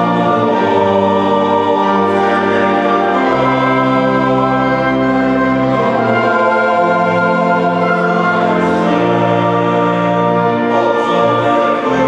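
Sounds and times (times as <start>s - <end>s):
men's choir singing a hymn: 0.0s - 12.0s
organ accompaniment: 0.0s - 12.0s.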